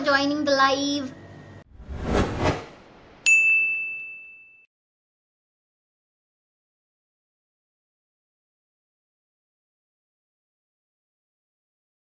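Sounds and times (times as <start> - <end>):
bright ding: 3.2 - 4.7.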